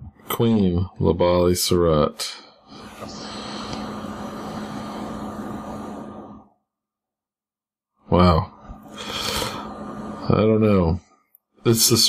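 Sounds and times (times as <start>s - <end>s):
background hiss: 1.6s - 6.5s, 8.1s - 11.0s
low hum: 2.7s - 6.7s, 8.1s - 12.0s.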